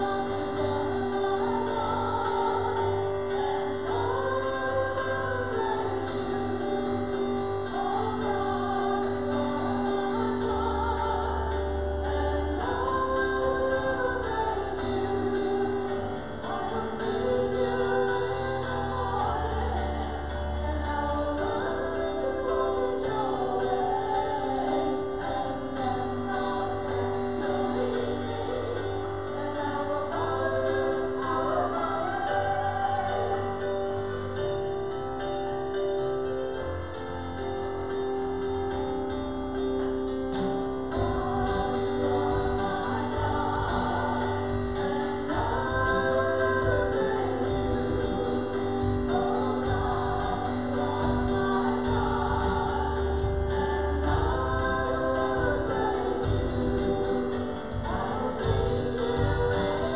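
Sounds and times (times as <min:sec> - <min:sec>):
women singing a worship song: 0:00.0 - 0:35.5, 0:36.1 - 0:59.9
piano accompaniment: 0:00.0 - 0:59.9.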